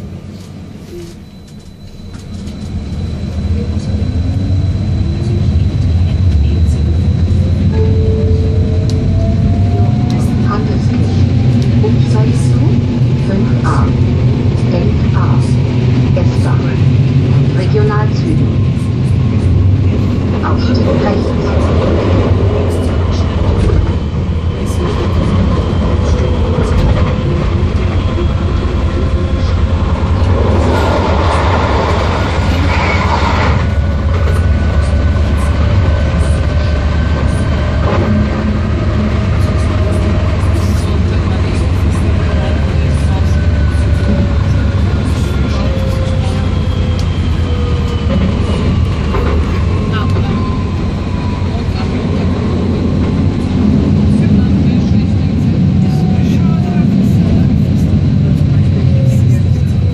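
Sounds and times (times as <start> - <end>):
train running noise: 0.0 - 59.9.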